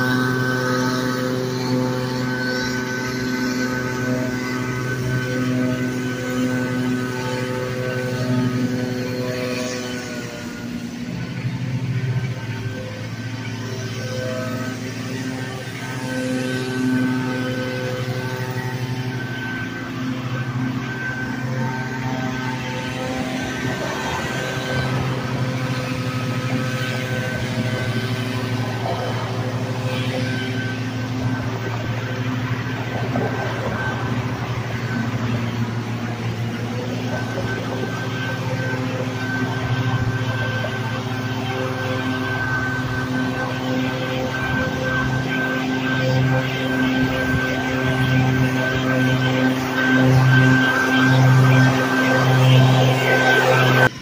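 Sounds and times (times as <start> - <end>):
leaf blower engine running: 0.0 - 54.0.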